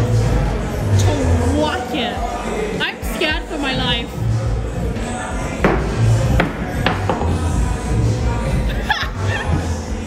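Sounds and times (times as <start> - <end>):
ball knocking: 5.6 - 7.5.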